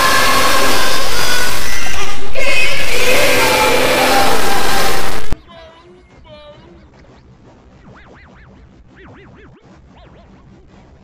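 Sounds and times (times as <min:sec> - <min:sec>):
harsh mash of layered soundtracks: 0:00.0 - 0:05.4
swooping tones: 0:00.0 - 0:05.4.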